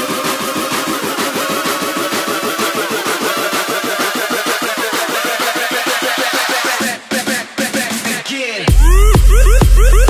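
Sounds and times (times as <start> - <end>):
buzzy pulsing synth: 8.7 - 10.0.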